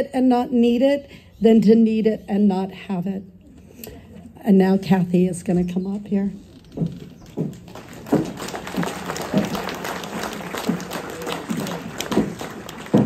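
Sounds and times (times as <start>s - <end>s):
voices calling out: 6.9s - 13.0s
audience applauding: 7.2s - 13.0s.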